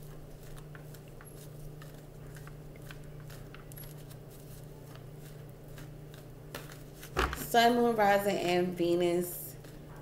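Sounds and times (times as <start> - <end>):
cards being shuffled: 0.4 - 7.5.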